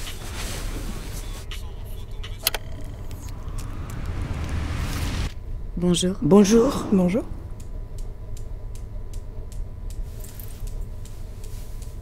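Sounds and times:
low rumble: 0:00.6 - 0:11.4
steady ticking: 0:01.5 - 0:12.0.

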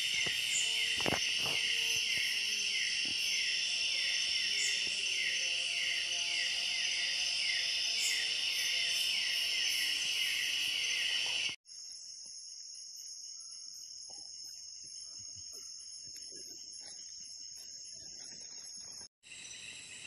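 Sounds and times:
crickets trilling: 0:00.0 - 0:20.0.

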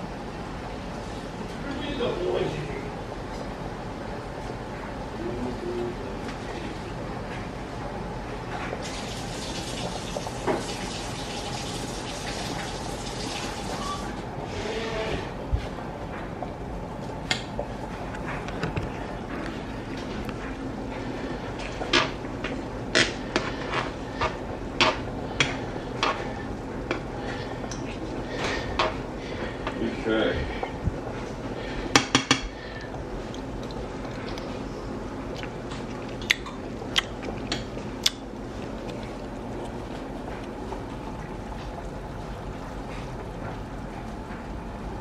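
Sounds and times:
pot boiling and bubbling: 0:00.0 - 0:45.0.

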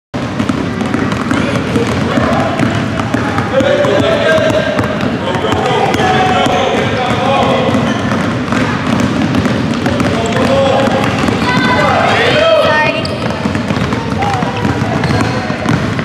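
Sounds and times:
basketballs dribbling on hardwood: 0:00.2 - 0:16.0
indistinct voices: 0:09.9 - 0:15.7.

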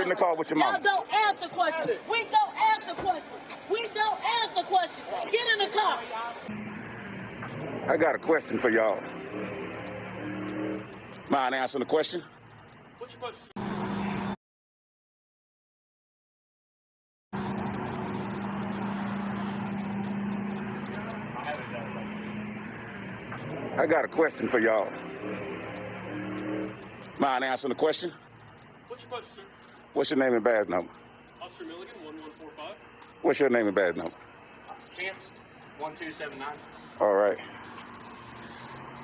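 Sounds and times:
car engine running: 0:00.0 - 0:14.4, 0:17.4 - 0:39.0.

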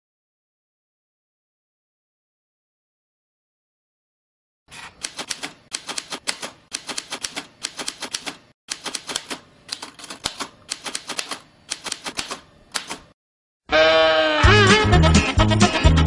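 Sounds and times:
manual typewriter typing: 0:04.7 - 0:13.2.

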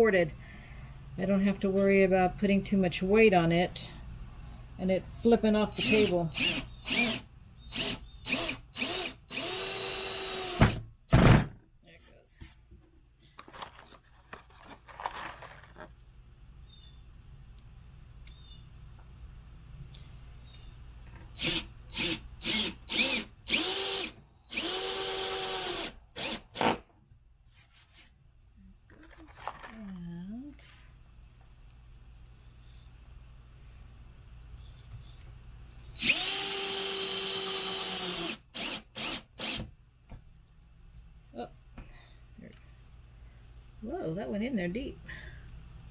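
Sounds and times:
cordless drill driving screws: 0:05.7 - 0:10.8, 0:21.4 - 0:26.8, 0:36.0 - 0:39.7.

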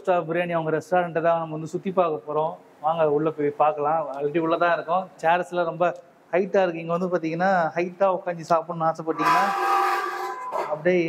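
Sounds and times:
chair scraping and squealing on floor: 0:09.1 - 0:10.8.

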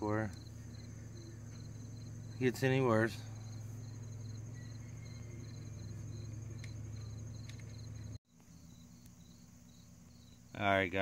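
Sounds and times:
high continuous insect trill: 0:00.0 - 0:11.0
insects chirping: 0:00.0 - 0:11.0
low steady hum: 0:00.0 - 0:11.0.

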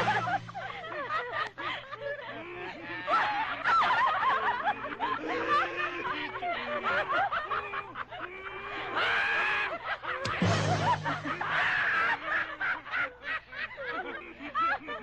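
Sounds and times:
background music: 0:00.0 - 0:01.0, 0:10.3 - 0:11.9
men and women laughing: 0:00.0 - 0:15.0
young men laughing loudly: 0:00.0 - 0:15.0.

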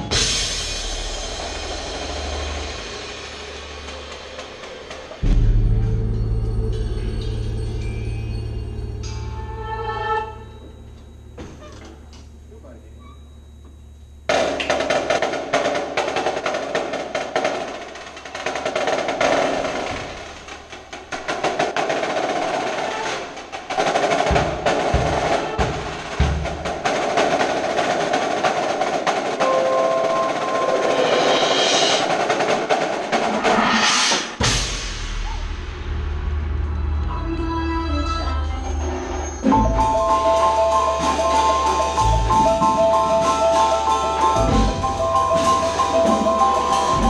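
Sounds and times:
marimbas and drums playing: 0:00.0 - 0:10.9, 0:14.3 - 0:35.5, 0:38.8 - 0:47.0
deep booming drum hits: 0:05.2 - 0:07.2.

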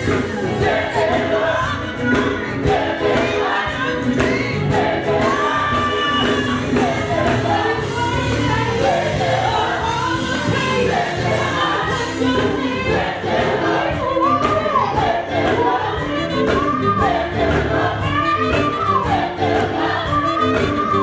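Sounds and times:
gospel choir singing in harmony: 0:00.0 - 0:21.0
live band with drum beat: 0:00.0 - 0:21.0.

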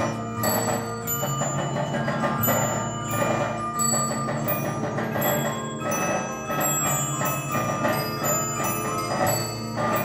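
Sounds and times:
music box bells ringing: 0:00.0 - 0:10.0
music box drum beats: 0:00.0 - 0:10.0.

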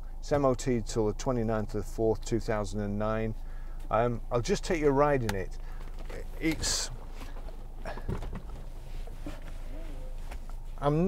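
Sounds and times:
low hum inside car: 0:00.0 - 0:11.0
knocks and rustles in car seat: 0:05.8 - 0:10.6.

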